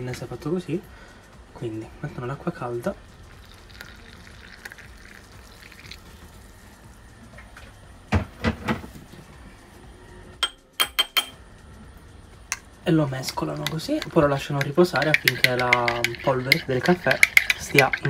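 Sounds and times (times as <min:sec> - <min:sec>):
hot water pouring into glass: 0:03.1 - 0:06.5
metal spoon clinking on glass: 0:10.4 - 0:11.4, 0:13.6 - 0:18.0.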